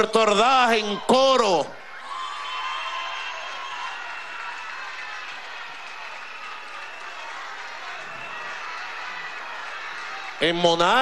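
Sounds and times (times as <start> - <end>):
crowd applauding and cheering: 0.0 - 11.0.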